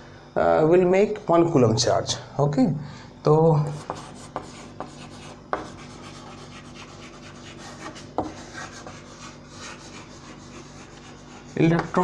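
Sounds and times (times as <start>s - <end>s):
chalk scratching on blackboard: 3.7s - 12.0s
chalk tapping on board: 3.7s - 12.0s.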